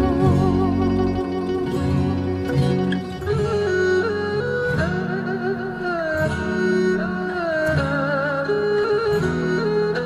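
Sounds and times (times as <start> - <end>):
gliding melody with vibrato: 0.0 - 10.0
sustained accompaniment: 0.0 - 10.0.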